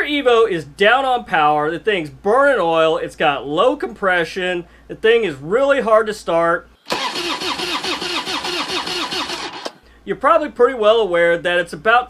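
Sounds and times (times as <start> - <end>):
starter cranking engine: 6.9 - 9.8.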